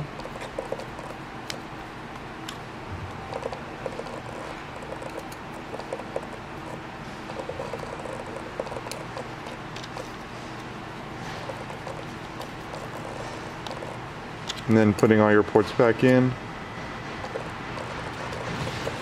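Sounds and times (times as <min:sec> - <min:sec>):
screwdriver ticks and scratching: 0:00.0 - 0:01.8, 0:02.4 - 0:15.2, 0:17.1 - 0:19.0.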